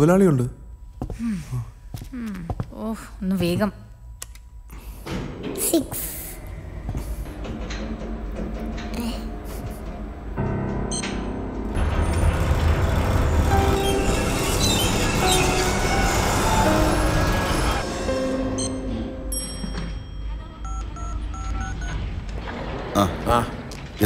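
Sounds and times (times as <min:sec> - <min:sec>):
tense film music: 0:06.1 - 0:24.0.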